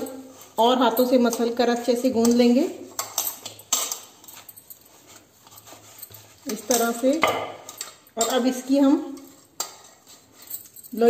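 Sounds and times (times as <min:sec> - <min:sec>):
hands kneading dough in a bowl: 0:00.0 - 0:11.0.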